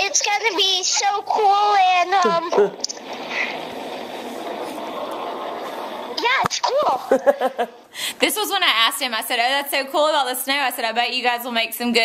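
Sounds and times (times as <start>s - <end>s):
steady rushing noise: 3.0s - 6.4s.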